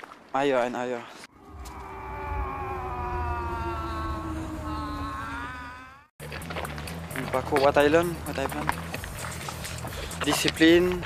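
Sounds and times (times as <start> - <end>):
low rumble: 1.3 - 6.6.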